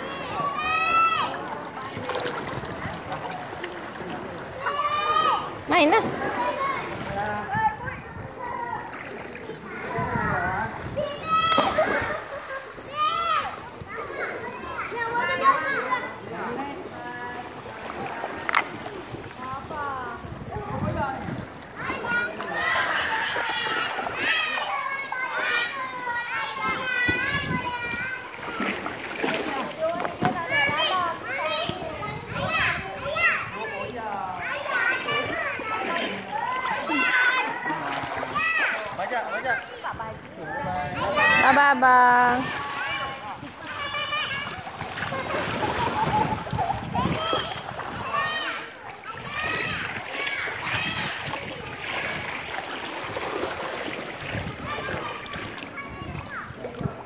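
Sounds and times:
children calling and chattering: 0:00.0 - 0:57.0
water splashing: 0:00.0 - 0:57.0.

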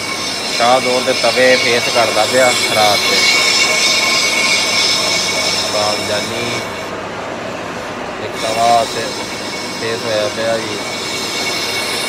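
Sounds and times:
high metallic squeal of lathe: 0:00.0 - 0:12.0.

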